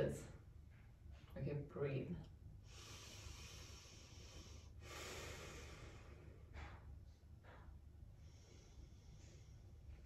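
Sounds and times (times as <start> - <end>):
woman breathing slowly: 2.6 - 10.0.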